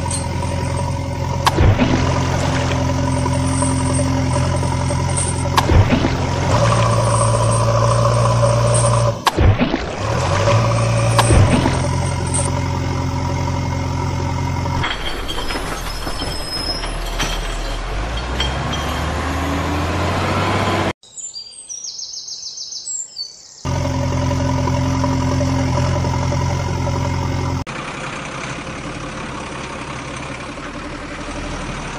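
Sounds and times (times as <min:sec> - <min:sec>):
truck engine running: 0:00.0 - 0:20.9, 0:23.7 - 0:31.9.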